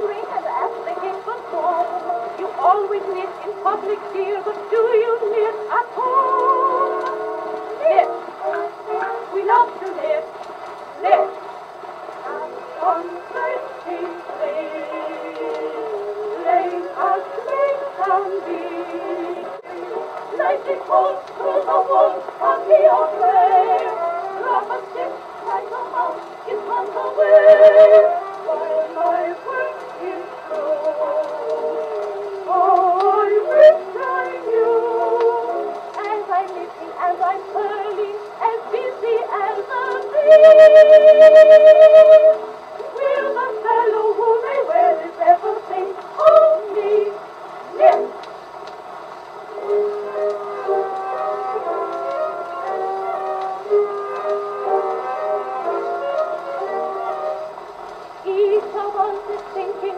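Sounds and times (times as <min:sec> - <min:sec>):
old phonograph recording of soprano trio: 0:00.0 - 0:59.9.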